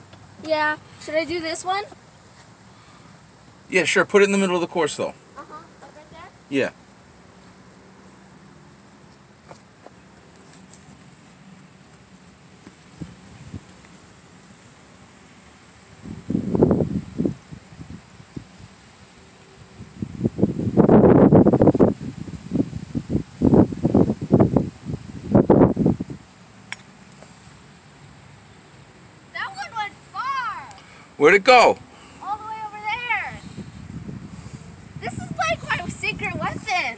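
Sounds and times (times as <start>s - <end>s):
wind buffeting microphone: 16.0s - 18.8s, 19.7s - 26.2s, 32.5s - 36.9s.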